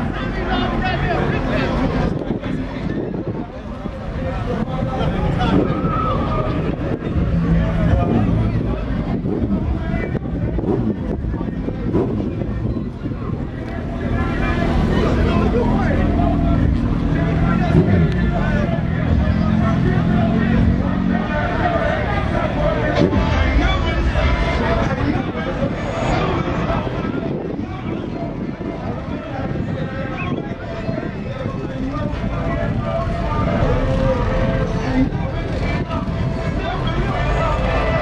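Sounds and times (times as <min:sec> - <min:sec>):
background voices talking: 0:00.0 - 0:38.0
crowd chatter: 0:00.0 - 0:38.0
vehicle engine idling: 0:00.0 - 0:38.0
steady low rumble: 0:02.0 - 0:38.0.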